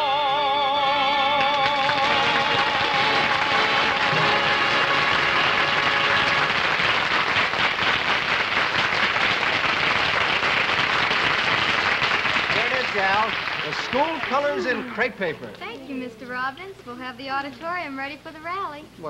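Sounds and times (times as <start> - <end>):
studio audience applauding: 1.2 - 15.4
orchestra final held chord: 2.1 - 6.7.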